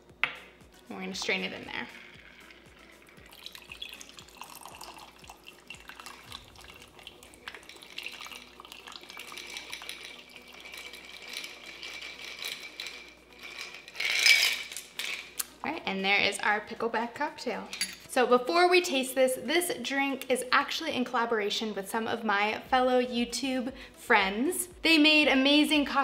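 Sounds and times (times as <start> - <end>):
liquid pouring over ice: 2.1 - 13.1
glass clink: 17.7 - 18.1.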